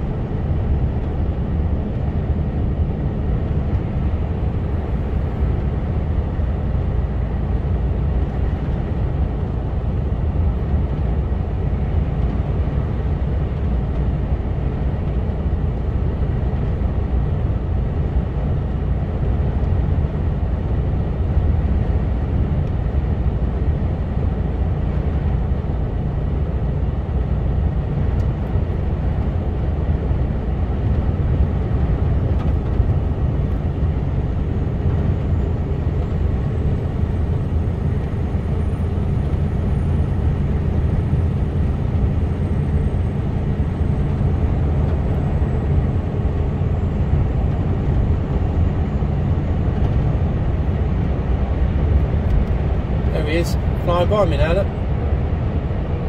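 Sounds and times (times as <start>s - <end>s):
lorry diesel engine drone: 0.0s - 56.0s
tyre and road noise: 0.0s - 56.0s.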